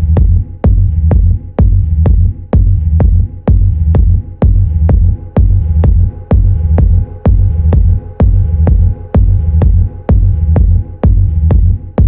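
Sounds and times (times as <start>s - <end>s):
rumbling bassline: 0.0s - 12.0s
techno kick drum: 0.0s - 12.0s.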